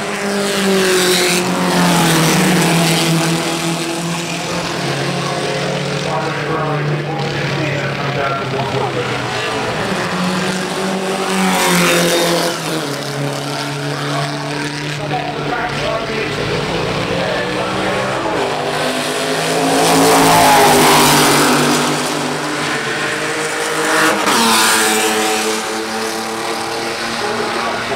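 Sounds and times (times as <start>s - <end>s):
racing car engines passing: 0.0s - 27.9s.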